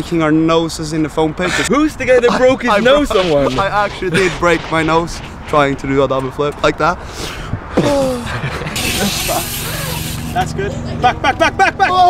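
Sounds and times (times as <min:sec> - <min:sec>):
person laughing: 0:01.4 - 0:05.4, 0:07.7 - 0:12.0
bike tyres hissing on concrete: 0:02.6 - 0:06.0, 0:08.7 - 0:10.7.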